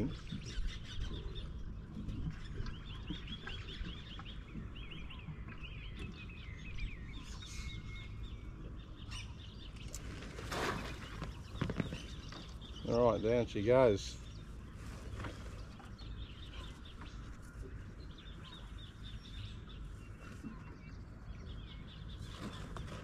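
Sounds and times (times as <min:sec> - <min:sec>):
low steady rumble: 0:00.0 - 0:22.8
birds chirping: 0:00.0 - 0:23.0.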